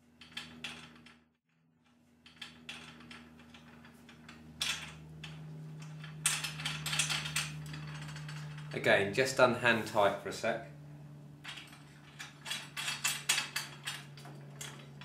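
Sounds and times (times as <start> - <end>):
low steady hum: 0.0 - 15.0.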